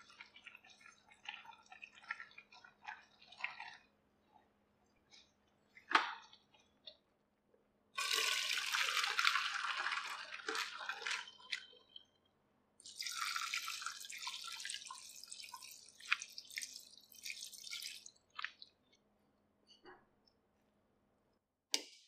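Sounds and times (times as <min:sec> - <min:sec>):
water dripping: 0:00.0 - 0:03.9, 0:12.8 - 0:19.0
water pouring and splashing: 0:00.0 - 0:03.9, 0:08.0 - 0:12.0, 0:12.8 - 0:18.8.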